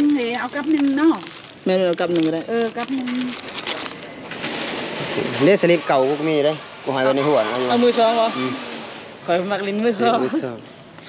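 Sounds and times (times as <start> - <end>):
packaging and boxes rustling: 0.0 - 6.5
person speaking: 9.9 - 10.6.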